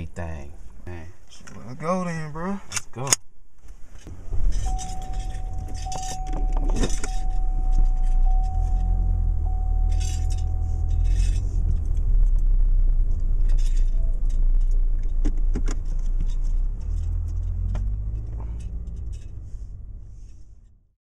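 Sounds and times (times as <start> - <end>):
car engine rumbling: 0.0 - 21.0
keys jangling: 4.4 - 8.9, 9.5 - 11.4
thin steady high tone: 4.5 - 14.8.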